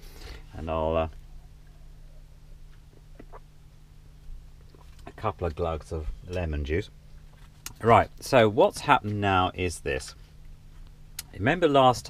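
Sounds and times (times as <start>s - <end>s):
steady low hum: 0.0s - 12.0s
person gulping a drink: 2.9s - 3.5s.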